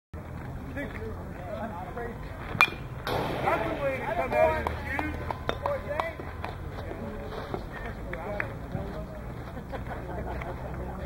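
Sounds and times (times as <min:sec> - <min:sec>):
bat hitting baseball crack: 0:02.6 - 0:03.9.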